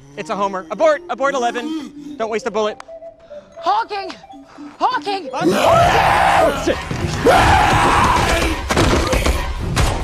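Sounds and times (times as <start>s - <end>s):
film action music: 0.0s - 10.0s
loud yelling: 5.4s - 8.6s.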